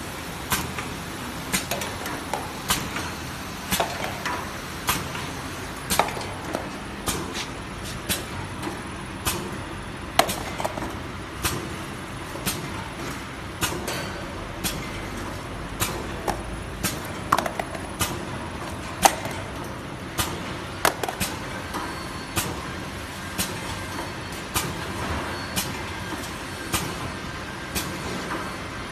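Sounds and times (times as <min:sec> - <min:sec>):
wrapping machine humming: 0:00.0 - 0:28.9.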